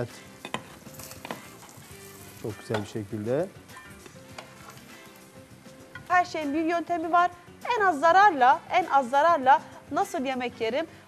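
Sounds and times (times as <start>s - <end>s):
eggplant sizzling in hot oil: 0.0s - 10.6s.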